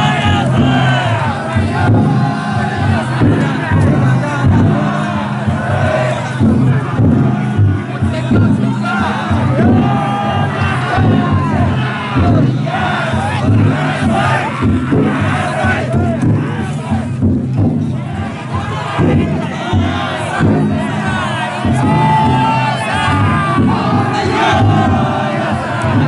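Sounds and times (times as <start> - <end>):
crowd noise: 0.0 - 26.0
men shouting a chant: 0.0 - 26.0.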